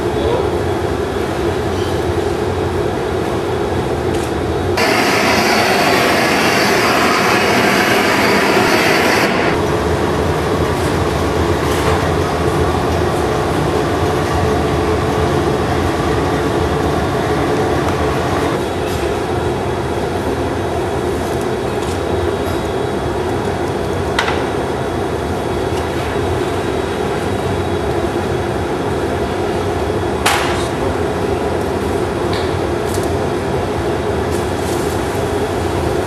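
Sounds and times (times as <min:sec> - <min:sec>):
furnace burners roaring: 0:00.0 - 0:36.0
loud hiss: 0:04.8 - 0:09.6.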